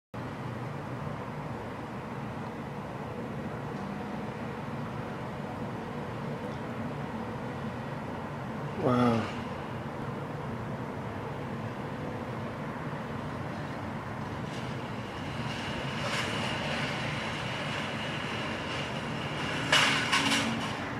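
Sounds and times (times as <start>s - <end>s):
car rolling slowly: 0.2s - 20.9s
loud clatter: 14.2s - 20.9s
shopping cart rattling and scraping: 14.3s - 20.9s.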